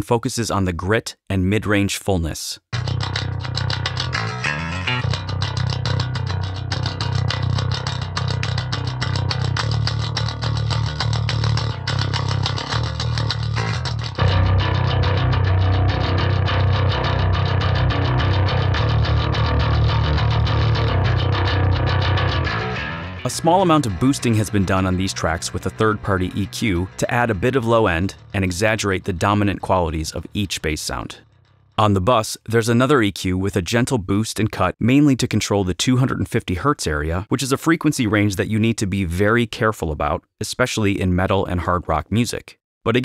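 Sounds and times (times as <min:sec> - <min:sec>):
electric bass playing metal riff: 0:02.7 - 0:31.8.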